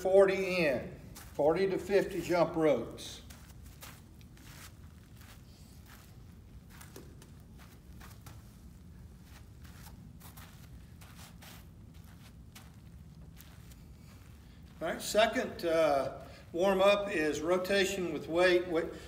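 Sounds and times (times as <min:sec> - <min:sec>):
floor fan humming: 0:00.0 - 0:19.0
footsteps on artificial turf: 0:00.0 - 0:19.0.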